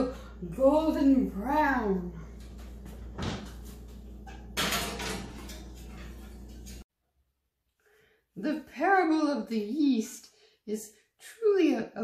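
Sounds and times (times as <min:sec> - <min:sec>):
loaf pan clattering onto oven rack: 0:04.3 - 0:06.1
oven door opening: 0:04.3 - 0:06.5.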